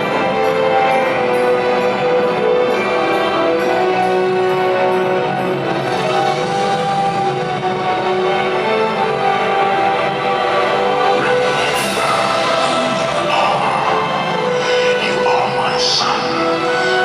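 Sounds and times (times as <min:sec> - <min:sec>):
music with long held chords: 0:00.0 - 0:17.0.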